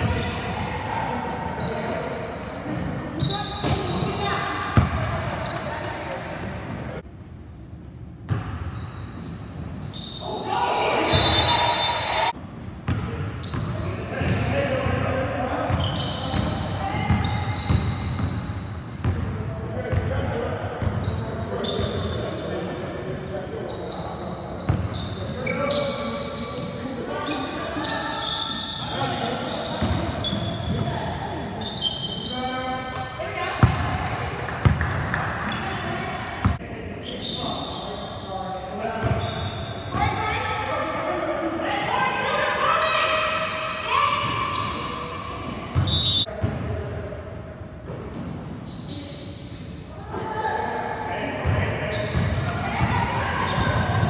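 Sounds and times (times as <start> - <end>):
sneaker squeaks: 0.0 - 6.3, 8.3 - 19.2, 19.9 - 33.8, 34.6 - 40.3, 42.8 - 46.5, 47.6 - 50.8, 51.4 - 54.0.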